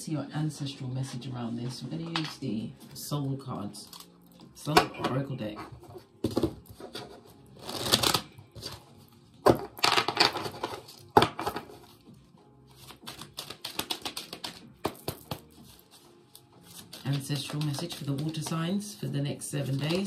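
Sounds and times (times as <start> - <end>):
cards being shuffled: 6.2 - 8.9, 9.5 - 12.0, 12.7 - 20.0.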